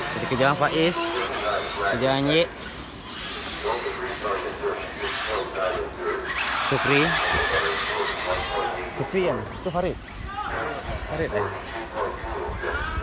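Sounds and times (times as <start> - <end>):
people talking: 0.0 - 2.5, 3.6 - 13.0
small nitro engines buzzing and revving: 0.0 - 10.0.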